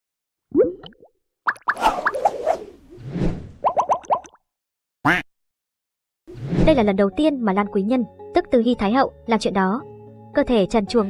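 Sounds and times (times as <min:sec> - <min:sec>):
swish: 0:01.7 - 0:03.6, 0:06.3 - 0:06.8.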